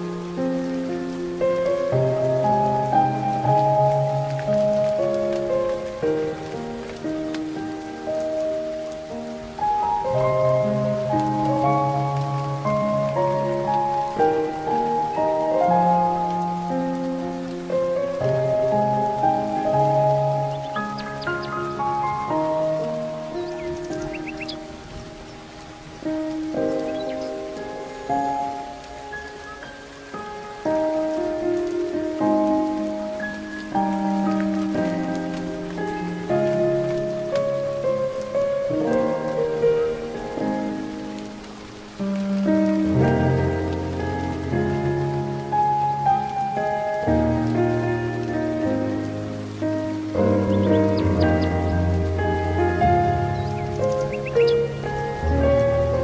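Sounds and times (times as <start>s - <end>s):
faint steady hiss: 0.0s - 56.0s
slow solo piano: 0.0s - 56.0s.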